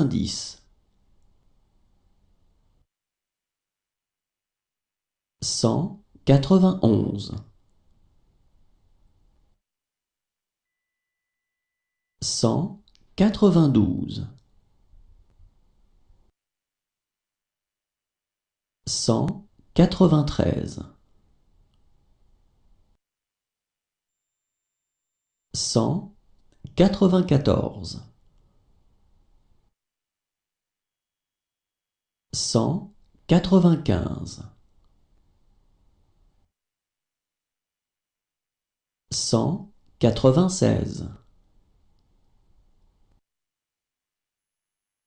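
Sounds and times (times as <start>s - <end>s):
person reading a number aloud: 0.0s - 0.7s, 5.4s - 7.6s, 12.2s - 14.4s, 18.8s - 21.0s, 25.6s - 28.2s, 32.3s - 34.6s, 39.1s - 41.2s
person reading out a number: 0.0s - 0.7s, 12.2s - 14.4s, 18.8s - 21.0s
faint low background noise: 0.0s - 2.9s.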